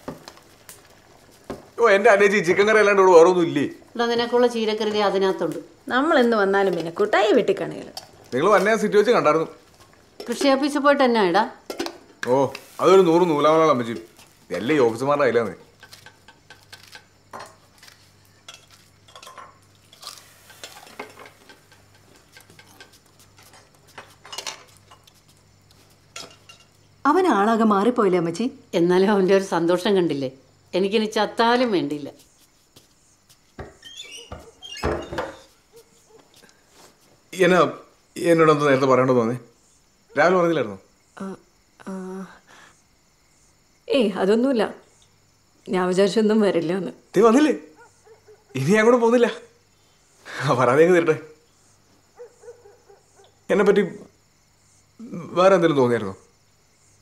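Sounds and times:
utensils clinking on dishes: 0:18.4 - 0:25.1, 0:26.1 - 0:26.8.

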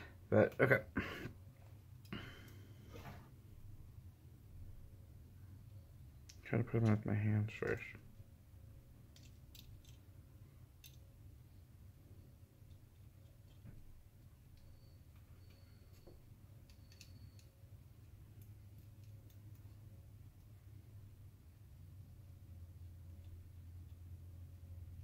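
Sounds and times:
low steady hum: 0:00.0 - 0:25.0.

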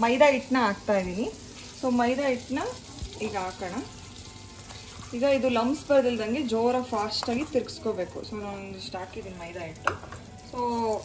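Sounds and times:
woman talking: 0:00.0 - 0:03.9, 0:05.1 - 0:09.8, 0:10.5 - 0:11.0
butter sizzling in a pan: 0:00.0 - 0:11.0.

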